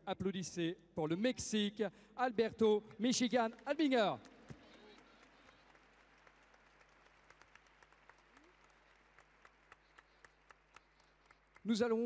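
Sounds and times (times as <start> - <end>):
distant crowd clapping: 3.6 - 12.0.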